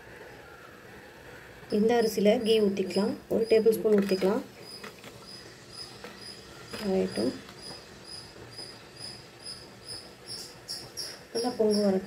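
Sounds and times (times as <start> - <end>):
person's voice: 1.7 - 4.5, 6.8 - 7.4, 11.4 - 12.0
cricket chirping: 3.4 - 12.0.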